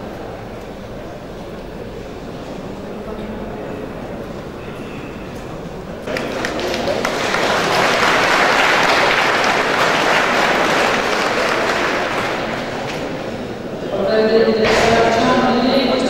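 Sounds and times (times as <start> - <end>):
audience applauding: 6.0 - 13.5.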